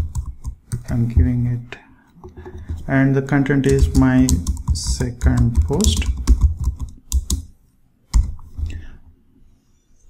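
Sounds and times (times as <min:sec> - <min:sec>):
typing on computer keyboard: 0:00.0 - 0:01.0, 0:03.6 - 0:07.5.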